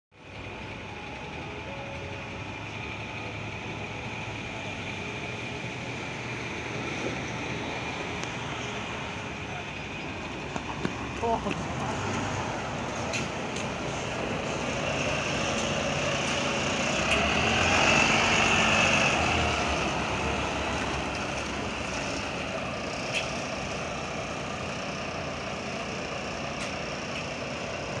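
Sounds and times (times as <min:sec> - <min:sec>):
high engine whine: 0:00.1 - 0:28.0
bus engine passing: 0:00.2 - 0:28.0.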